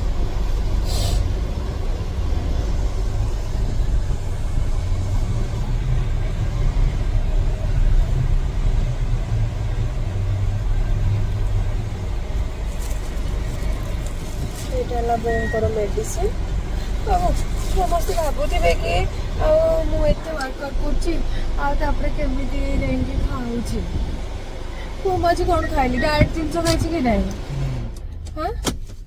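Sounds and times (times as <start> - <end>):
car engine and road noise: 0.0 - 29.0.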